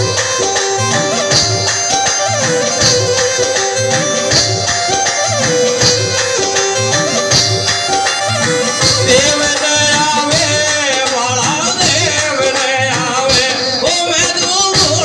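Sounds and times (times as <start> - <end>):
folk music over loudspeaker: 0.0 - 15.0
steady drum beat: 0.0 - 15.0.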